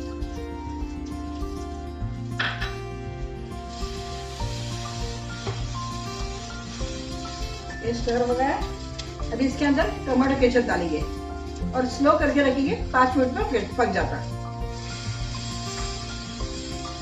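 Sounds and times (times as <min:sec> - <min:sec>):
background music with bass line: 0:00.0 - 0:17.0
beans sizzling in oil: 0:00.0 - 0:17.0
wooden spatula stirring: 0:03.7 - 0:17.0.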